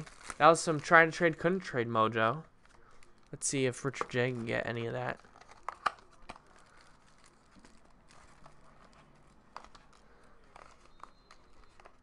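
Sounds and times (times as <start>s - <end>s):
plastic wrap crinkling: 0.0s - 12.0s.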